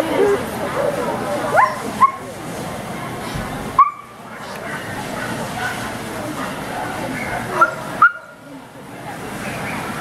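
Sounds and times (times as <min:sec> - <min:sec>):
murmur of people talking: 0:00.0 - 0:10.0
dog yipping: 0:01.6 - 0:02.2.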